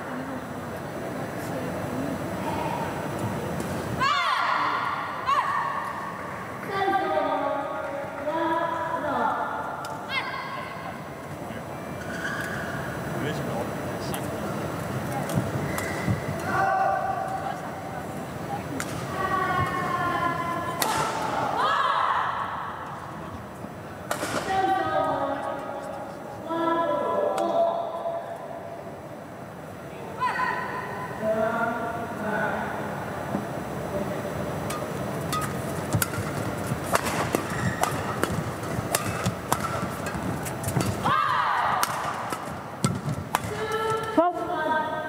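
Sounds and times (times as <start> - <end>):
voices calling out and talking: 0.0 - 45.0.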